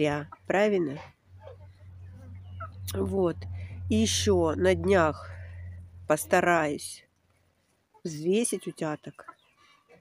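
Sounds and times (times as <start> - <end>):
low steady hum: 0.0 - 7.6
ducklings peeping: 1.4 - 3.2.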